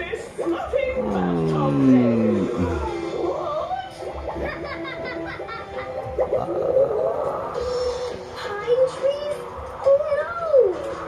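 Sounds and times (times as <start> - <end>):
cartoon voices: 0.9 - 3.0
cartoon background music: 1.0 - 11.0.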